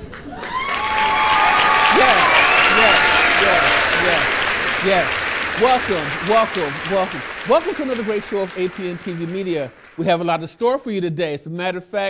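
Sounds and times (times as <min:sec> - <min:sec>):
applause with cheering: 0:00.0 - 0:10.4
man's voice: 0:01.9 - 0:12.0.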